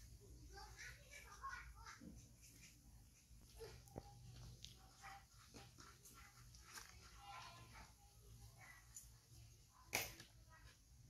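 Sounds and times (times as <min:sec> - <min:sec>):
baby monkey drinking from bottle: 0:00.3 - 0:09.4.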